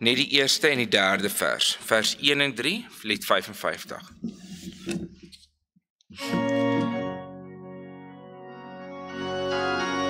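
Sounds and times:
organ playing held chord: 0:06.2 - 0:10.0.

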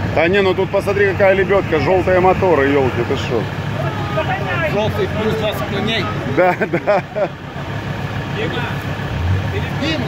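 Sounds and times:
buggy engine idling: 0:00.0 - 0:10.0
people talking: 0:00.2 - 0:10.0.

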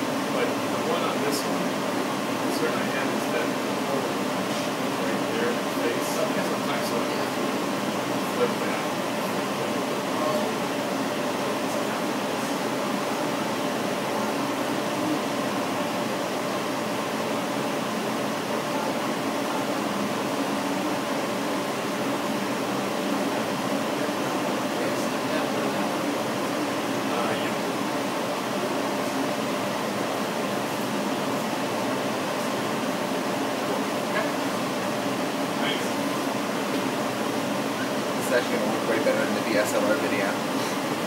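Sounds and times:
faint steady hums: 0:00.0 - 0:41.0
laser engraver fan-like whir: 0:00.0 - 0:41.0.

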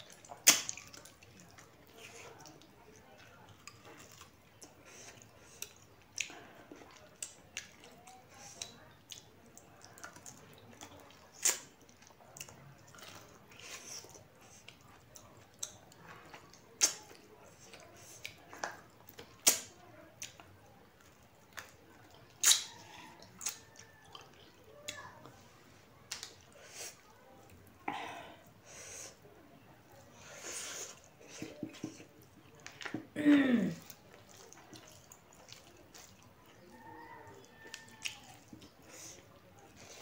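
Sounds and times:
lip smacks: 0:00.0 - 0:02.6, 0:08.5 - 0:14.8, 0:15.5 - 0:25.0, 0:26.1 - 0:27.0, 0:37.4 - 0:40.0
person chewing food: 0:00.0 - 0:29.2, 0:29.9 - 0:40.0.

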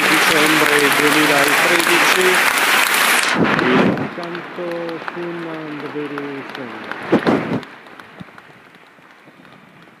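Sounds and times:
scattered audience claps: 0:00.0 - 0:10.0.

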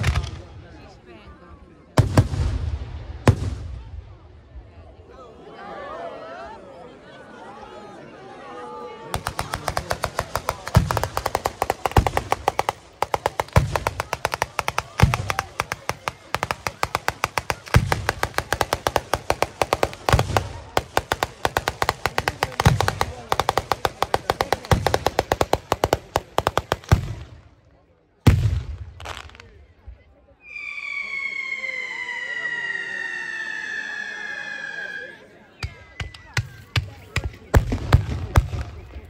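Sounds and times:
fireworks bangs: 0:02.0 - 0:04.0, 0:09.2 - 0:27.5, 0:28.2 - 0:29.6, 0:35.6 - 0:39.0
heavy fireworks booms: 0:02.0 - 0:04.2, 0:09.2 - 0:27.5, 0:28.2 - 0:29.5, 0:36.8 - 0:39.0.

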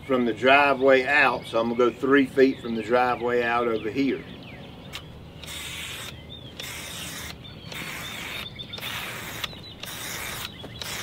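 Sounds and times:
aerosol paint spray hissing: 0:05.4 - 0:11.0.

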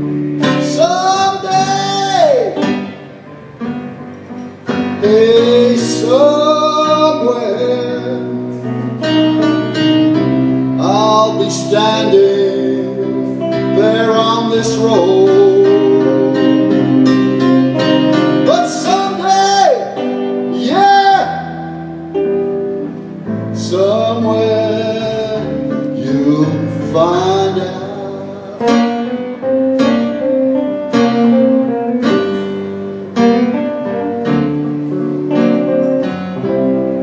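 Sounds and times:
electric guitar lead: 0:00.0 - 0:37.0
electric keyboard chords: 0:00.0 - 0:37.0.

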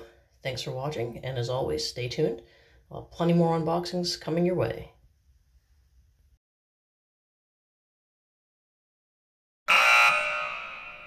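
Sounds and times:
loud buzzer-like tone: 0:09.7 - 0:11.0.

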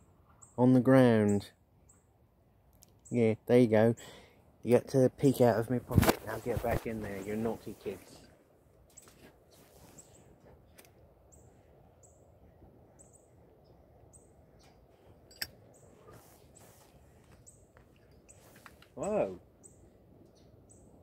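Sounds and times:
bird chirping: 0:00.0 - 0:02.2, 0:08.9 - 0:21.0.

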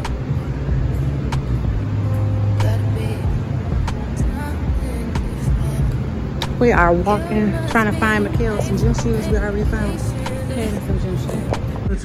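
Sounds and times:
faint music: 0:00.0 - 0:12.0
low outdoor rumble: 0:00.0 - 0:12.0.

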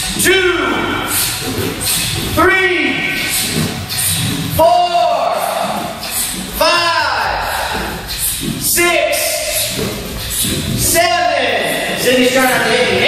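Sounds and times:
person shouting in echoing hall: 0:04.6 - 0:08.0.

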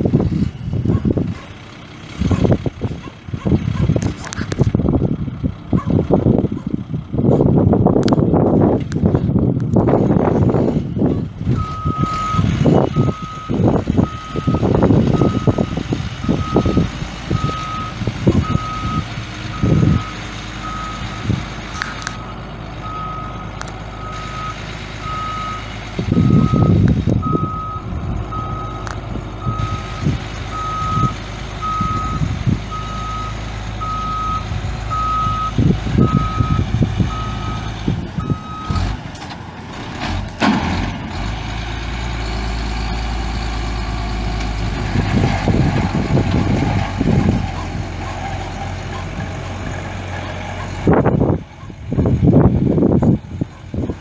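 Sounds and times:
diesel truck engine running: 0:00.0 - 0:54.0
reversing alarm beeping: 0:11.6 - 0:21.4, 0:22.1 - 0:38.9.

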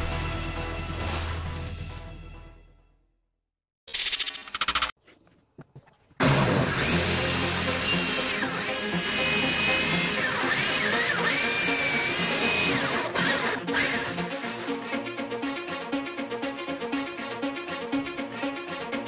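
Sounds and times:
background music: 0:00.0 - 0:03.0, 0:06.2 - 0:19.0
electric drill whining: 0:06.2 - 0:14.8.

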